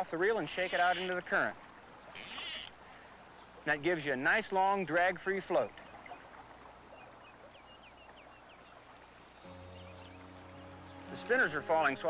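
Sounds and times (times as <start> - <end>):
high bird chirps: 9.3 - 11.7
held chord of background music: 9.4 - 12.0.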